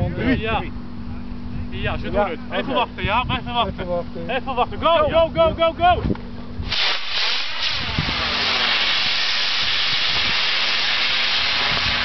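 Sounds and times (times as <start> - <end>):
rocket motor hissing: 6.6 - 12.0.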